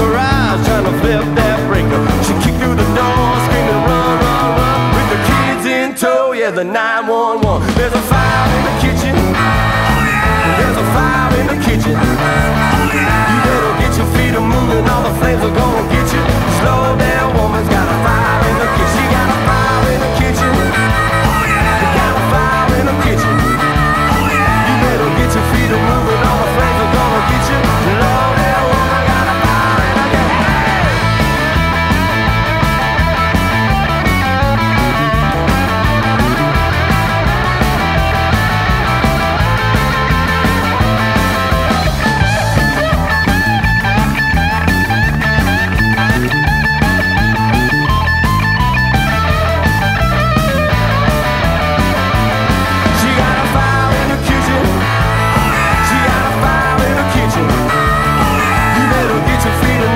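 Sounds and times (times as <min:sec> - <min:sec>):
drums keeping a beat: 0:00.0 - 0:05.6, 0:07.4 - 0:59.9
lead electric guitar: 0:00.0 - 0:05.7, 0:08.1 - 0:59.9
bass guitar: 0:00.0 - 0:05.8, 0:07.4 - 0:59.9.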